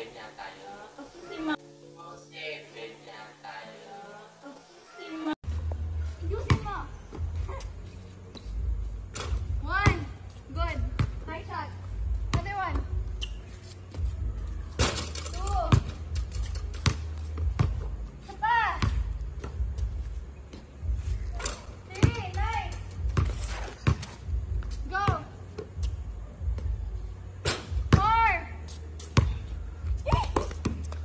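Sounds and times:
basketball bouncing: 0:06.4 - 0:07.6, 0:10.7 - 0:11.3, 0:12.2 - 0:13.2, 0:15.6 - 0:17.9, 0:21.9 - 0:26.8, 0:29.1 - 0:29.4, 0:30.0 - 0:31.0.

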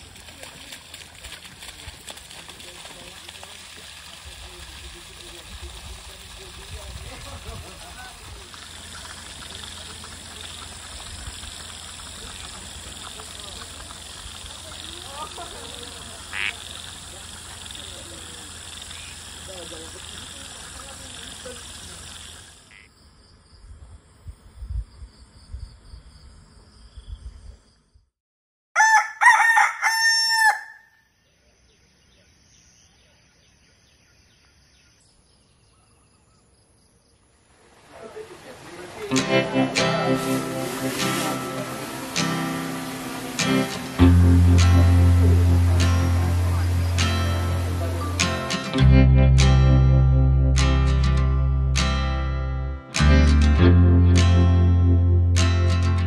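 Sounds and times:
insects droning: 0:00.0 - 0:28.0, 0:29.8 - 0:49.1
rooster crowing: 0:28.8 - 0:31.0.

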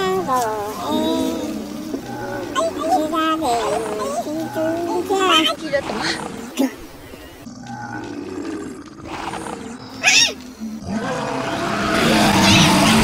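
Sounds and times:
monster growls and roars: 0:00.0 - 0:13.0.

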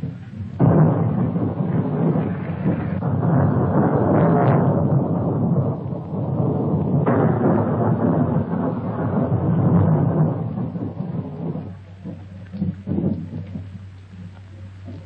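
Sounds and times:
rolling thunder: 0:00.0 - 0:15.0
steady rain: 0:00.0 - 0:15.0.

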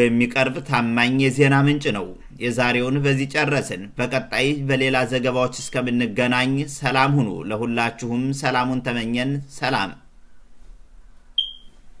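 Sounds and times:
high-pitched electronic tone: 0:11.4 - 0:11.8.

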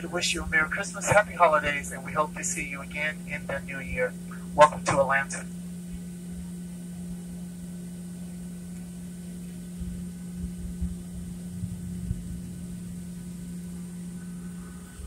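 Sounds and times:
airliner cabin hum: 0:00.0 - 0:15.0
soft low thumps: 0:08.1 - 0:15.0.

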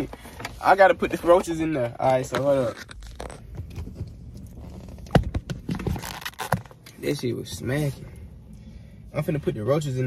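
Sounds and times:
rustling and scraping: 0:00.0 - 0:08.2.

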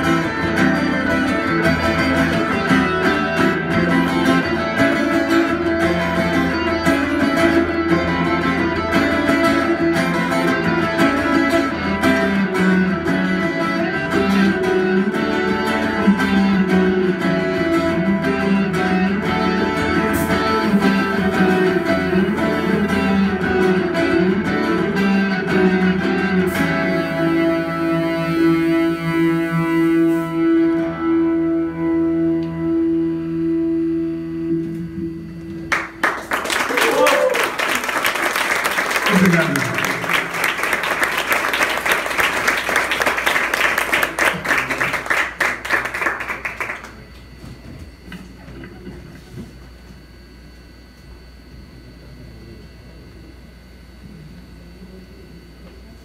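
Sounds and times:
electric guitar and keyboard music: 0:00.0 - 0:48.1
audience applauding: 0:35.7 - 0:47.2
audience shouts: 0:36.7 - 0:37.8.

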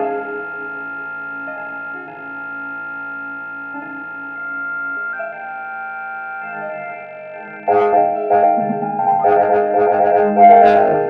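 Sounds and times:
synthesizer drone chord: 0:00.0 - 0:11.0.

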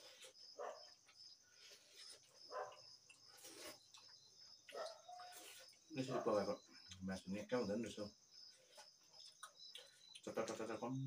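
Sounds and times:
cricket chirping: 0:00.0 - 0:11.0.

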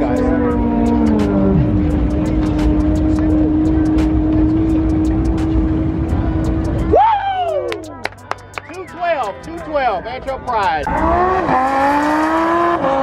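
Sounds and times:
car passing at full throttle: 0:10.9 - 0:13.0.

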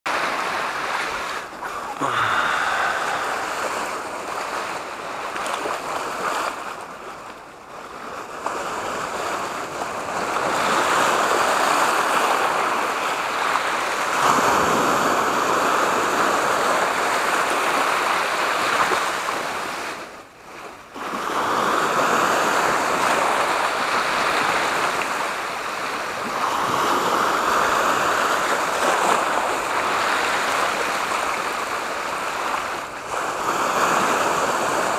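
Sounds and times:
sea waves breaking on rocks: 0:00.1 - 0:34.9.

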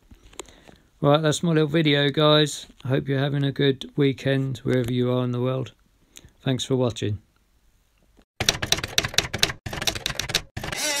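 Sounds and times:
typewriter key strikes: 0:08.4 - 0:11.0.

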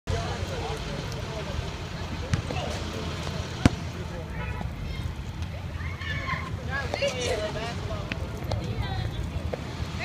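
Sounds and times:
bus engines idling: 0:00.1 - 0:10.0
voices chattering: 0:00.1 - 0:10.0.

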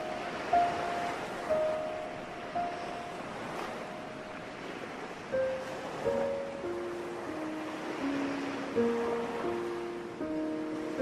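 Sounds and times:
ocean surf breaking: 0:00.0 - 0:11.0.

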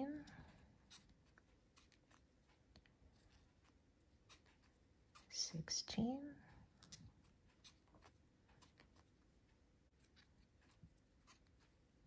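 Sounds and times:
crochet hook clicks and scratches: 0:00.0 - 0:11.9.

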